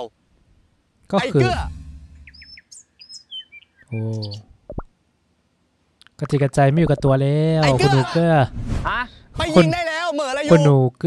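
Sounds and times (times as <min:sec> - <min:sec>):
small birds chirping: 0:01.0 - 0:04.9.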